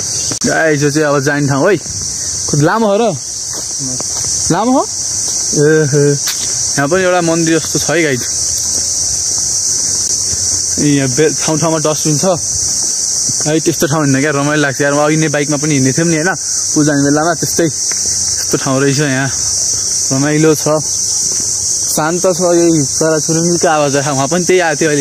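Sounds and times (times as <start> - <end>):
forest insects droning: 0.0 - 25.0
man talking: 0.4 - 1.9, 2.5 - 3.2, 3.8 - 8.4, 10.8 - 12.5, 13.3 - 17.8, 18.4 - 19.4, 20.1 - 20.9, 21.9 - 25.0.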